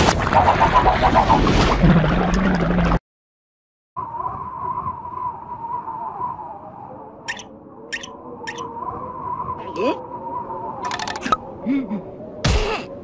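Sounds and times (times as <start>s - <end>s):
wind-like cartoon ambience: 4.0s - 13.0s.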